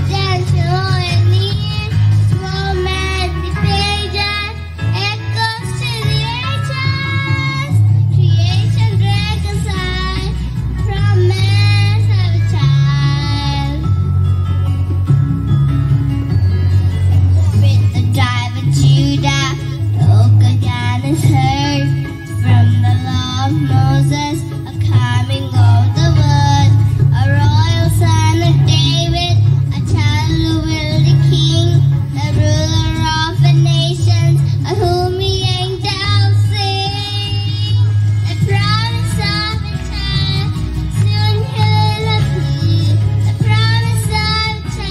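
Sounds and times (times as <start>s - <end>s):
girl singing into microphone: 0.0s - 14.1s, 17.3s - 44.9s
backing track with bass: 0.0s - 44.9s.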